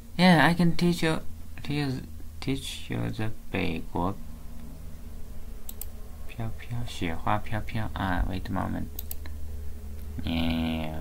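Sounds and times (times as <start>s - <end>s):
low steady hum: 0.0s - 11.0s
computer mouse clicks: 5.6s - 6.0s, 9.0s - 9.4s.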